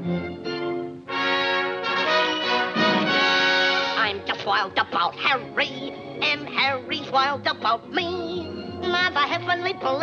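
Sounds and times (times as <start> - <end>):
orchestra playing: 0.0 - 4.1
loud sustained brass chords: 1.1 - 4.0.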